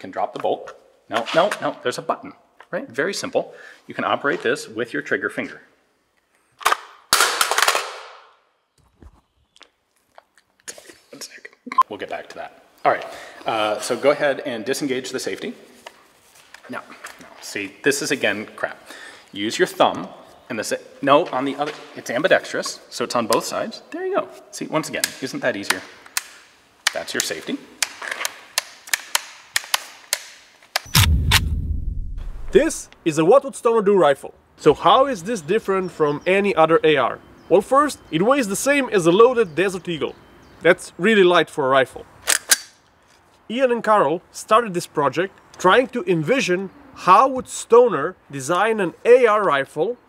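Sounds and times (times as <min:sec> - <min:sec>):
deep rumble: 0:30.9 - 0:32.8
loud hit: 0:30.9 - 0:32.8
rifle handling clicks: 0:42.2 - 0:42.8
rifle magazine release clack: 0:42.2 - 0:42.8.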